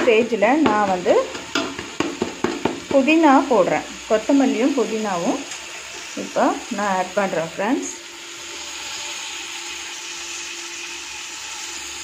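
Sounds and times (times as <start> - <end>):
food sizzling in oil: 0.0 - 12.0.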